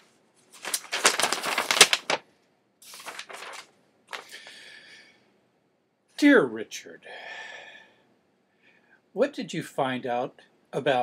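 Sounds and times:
paper rustling and crackling: 0.0s - 2.2s, 2.8s - 4.6s.

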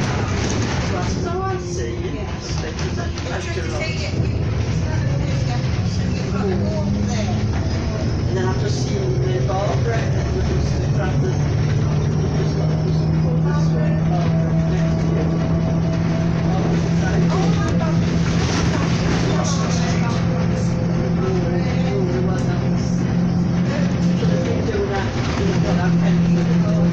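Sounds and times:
bus engine running: 0.0s - 26.9s
road noise: 0.0s - 26.9s.

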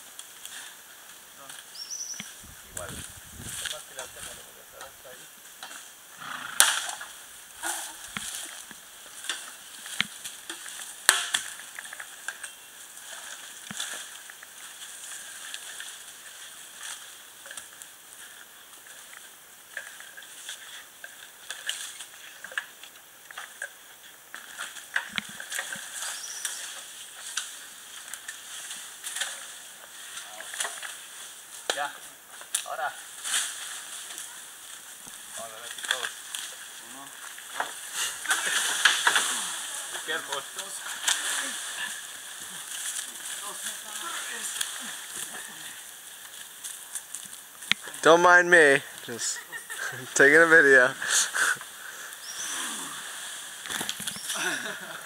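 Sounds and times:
bamboo crackling and snapping: 0.0s - 50.1s, 50.9s - 55.0s
steady high hiss: 0.0s - 55.0s
sharp bamboo cracks: 6.5s - 48.0s, 51.1s - 55.0s.

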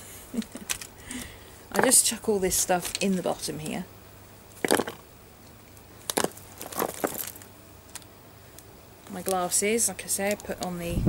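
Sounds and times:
items knocking into handbag: 4.6s - 5.0s.

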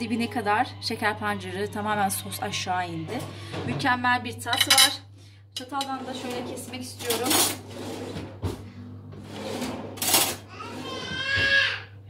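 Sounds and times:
child calling out: 10.5s - 12.0s.

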